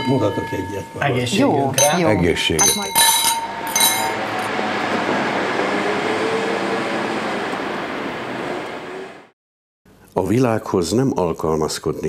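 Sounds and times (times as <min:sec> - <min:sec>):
steady rushing noise: 0:03.2 - 0:09.3.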